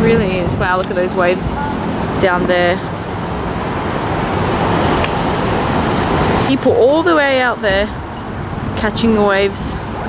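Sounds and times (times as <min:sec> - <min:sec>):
ocean surf on rocks: 0:00.0 - 0:10.0.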